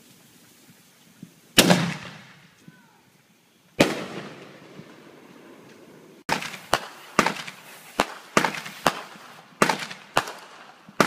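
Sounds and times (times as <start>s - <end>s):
fireworks bangs: 1.5s - 2.8s, 3.8s - 11.0s.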